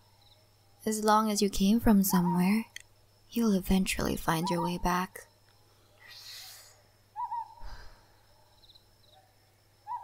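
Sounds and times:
soft breathy hiss: 0:05.3 - 0:09.8
owl hooting: 0:06.1 - 0:07.8, 0:09.1 - 0:10.0.

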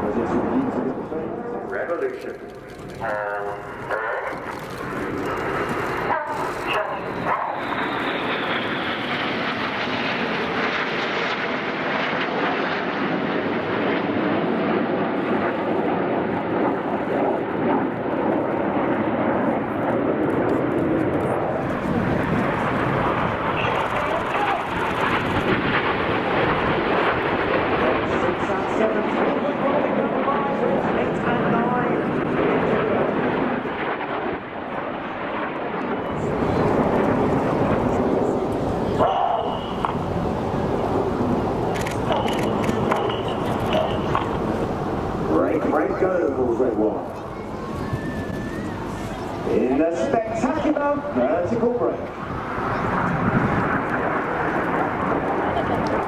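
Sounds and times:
jet aircraft flying overhead: 0:00.0 - 0:56.0.

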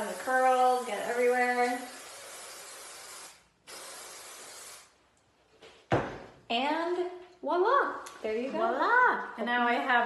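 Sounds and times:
hairspray can hissing: 0:00.0 - 0:05.0.

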